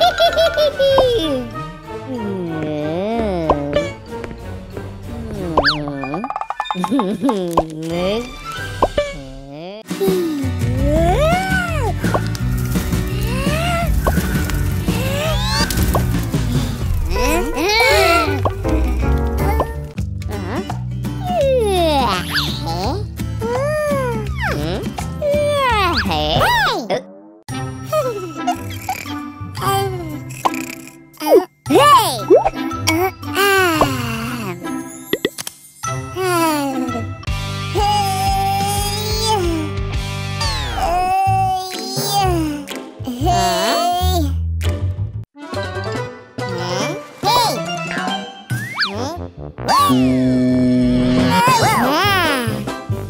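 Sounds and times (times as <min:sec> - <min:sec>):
background music: 0:00.0 - 0:53.0
rising pop sound effects: 0:35.1 - 0:35.4.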